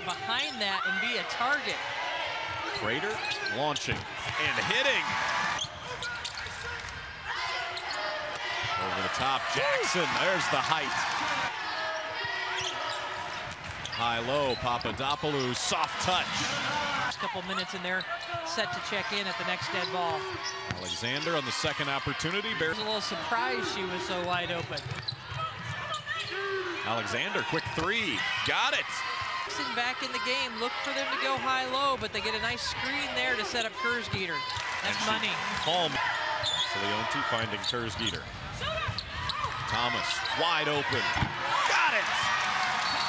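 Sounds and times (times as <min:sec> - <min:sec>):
crowd cheering: 0:00.0 - 0:38.0, 0:38.6 - 0:43.0
sneakers squeaking: 0:02.5 - 0:09.2, 0:11.6 - 0:15.6, 0:17.1 - 0:21.4, 0:22.7 - 0:26.4, 0:36.3 - 0:37.0, 0:42.7 - 0:43.0.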